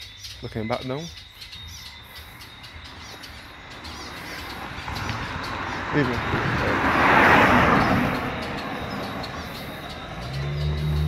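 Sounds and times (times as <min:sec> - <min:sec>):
birds chirping: 0:00.0 - 0:11.0
rush of noise: 0:04.0 - 0:10.0.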